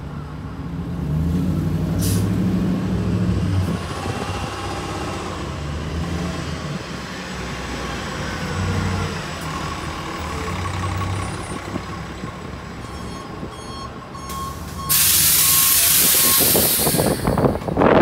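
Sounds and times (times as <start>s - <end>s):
bus diesel engine idling: 8.4s - 18.0s.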